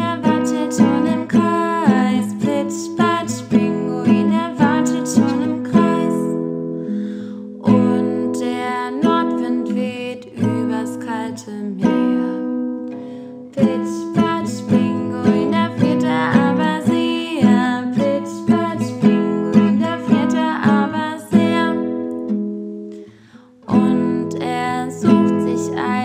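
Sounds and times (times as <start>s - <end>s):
woman singing children's song: 0.0s - 6.4s, 7.6s - 12.5s, 13.5s - 22.1s, 23.6s - 26.0s
strummed acoustic guitar: 0.0s - 26.0s.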